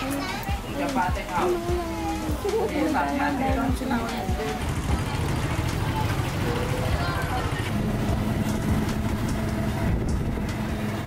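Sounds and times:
motorbike engine humming: 0:00.0 - 0:11.0
street traffic: 0:00.0 - 0:11.0.

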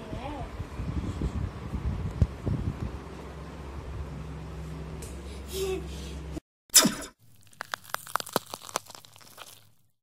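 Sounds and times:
sharp crackling clicks: 0:06.8 - 0:09.6.

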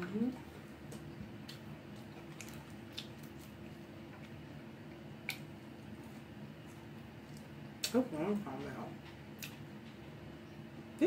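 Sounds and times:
chewing food: 0:00.3 - 0:10.1.

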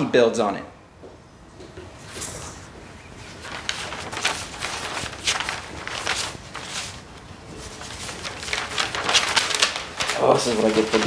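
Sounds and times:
paper sheets rustling: 0:02.1 - 0:11.0.

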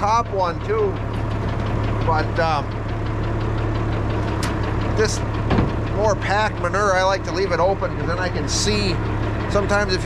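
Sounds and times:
tractor engine idling: 0:00.0 - 0:10.0.

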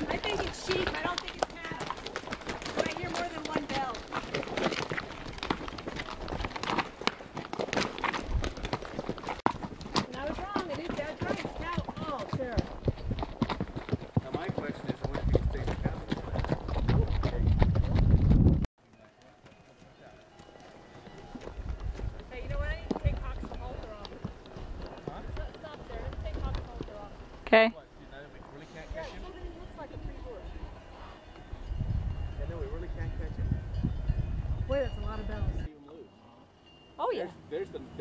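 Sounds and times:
horse hooves clopping on dirt: 0:00.0 - 0:28.6.

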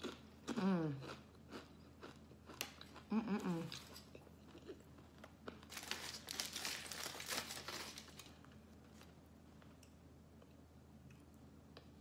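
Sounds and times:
aluminium foil crinkling: 0:05.6 - 0:09.1.

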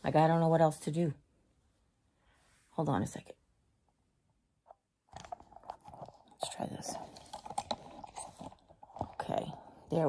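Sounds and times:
phone rustling against bedding: 0:05.1 - 0:09.7.

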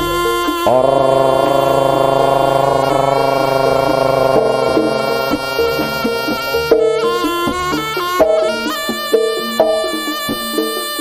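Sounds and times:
shrill shawm long note: 0:00.0 - 0:10.2
gamelan ensemble: 0:02.9 - 0:11.0.

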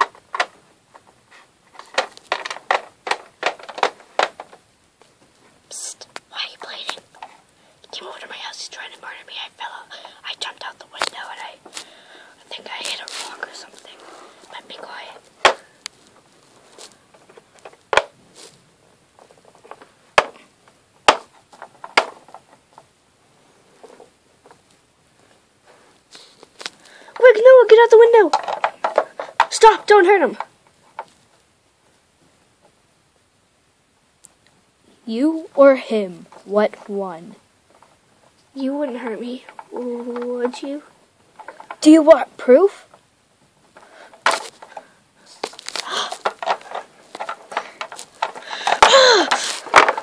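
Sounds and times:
plastic figurines clicking and tapping: 0:00.0 - 0:04.6, 0:21.1 - 0:22.9, 0:27.1 - 0:31.1, 0:38.6 - 0:43.0, 0:43.8 - 0:50.0
faint scratching and rustling: 0:00.0 - 0:32.8, 0:34.8 - 0:50.0
light taps of toy on plastic: 0:38.9 - 0:40.7.

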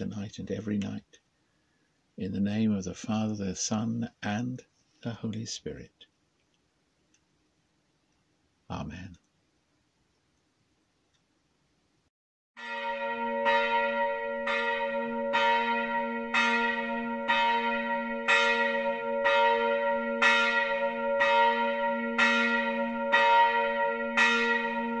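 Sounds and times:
church bell tolling: 0:12.6 - 0:25.0.

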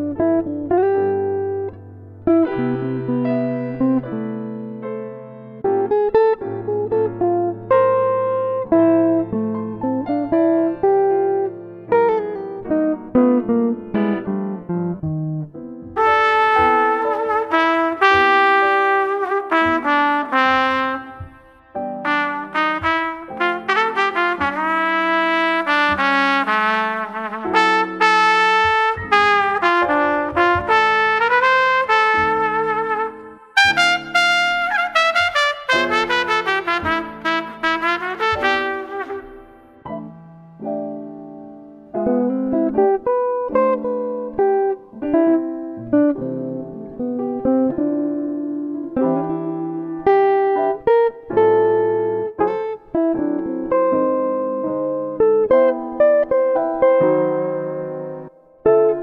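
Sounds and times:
plucked guitar notes: 0:00.0 - 0:59.0
trumpet playing melody: 0:16.0 - 0:39.9.

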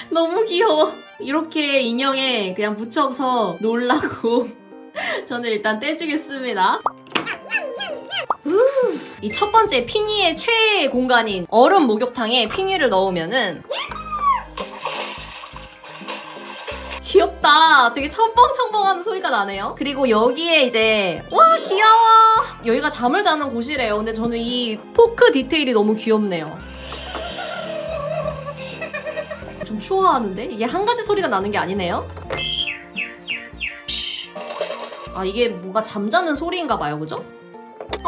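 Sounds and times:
background music simple melody: 0:00.0 - 0:38.0
toy electronic chirps: 0:32.3 - 0:34.4.

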